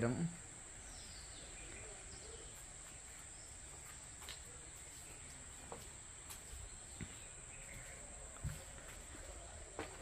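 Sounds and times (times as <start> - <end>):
faint bird chirps: 0.0 - 9.8.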